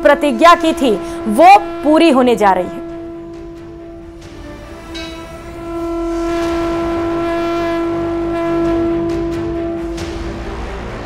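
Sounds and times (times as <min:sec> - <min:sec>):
background music: 0:00.0 - 0:11.0
steady horn-like tone: 0:00.0 - 0:11.0.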